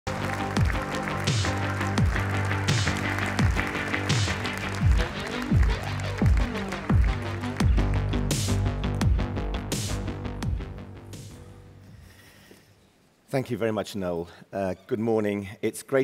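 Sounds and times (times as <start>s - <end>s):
held synth chords: 0.1s - 11.8s
deep kick drum: 9.0s - 9.7s.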